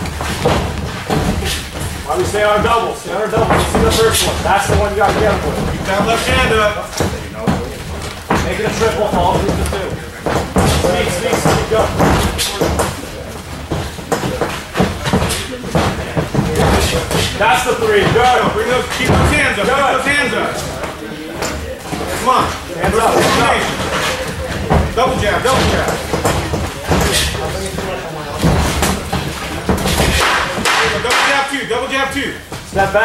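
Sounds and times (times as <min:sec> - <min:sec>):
boxing gloves thudding: 0:00.0 - 0:31.3
feet stepping on canvas: 0:00.0 - 0:33.0.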